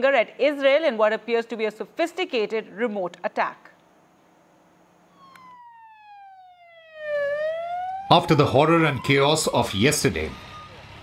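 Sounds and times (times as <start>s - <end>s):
ambulance siren wailing: 5.1s - 11.0s.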